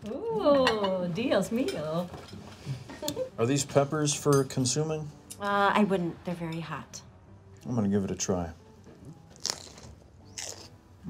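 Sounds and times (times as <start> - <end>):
crunchy bite into pepper: 9.3 - 10.8.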